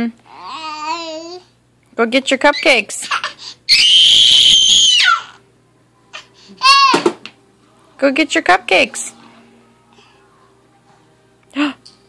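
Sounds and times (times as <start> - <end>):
toddler squealing: 3.2 - 5.4, 6.6 - 7.0.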